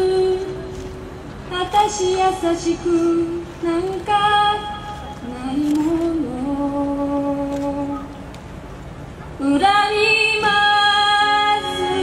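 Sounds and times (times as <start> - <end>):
woman singing a slow ballad: 0.0 - 0.8, 1.5 - 8.1, 9.4 - 12.0.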